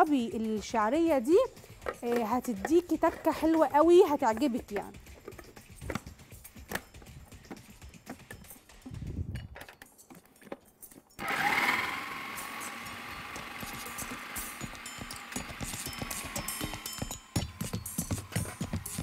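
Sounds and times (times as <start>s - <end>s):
food processor grinding mixture: 11.2s - 19.0s
food processor motor whining: 11.2s - 19.0s.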